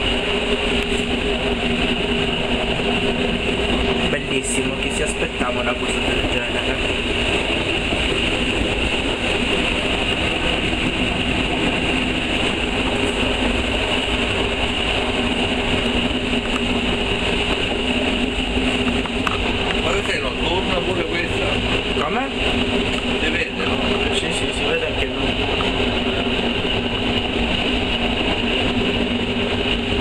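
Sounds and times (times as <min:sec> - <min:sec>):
diesel engine droning: 0:00.0 - 0:30.0
steady hum tones: 0:00.0 - 0:30.0.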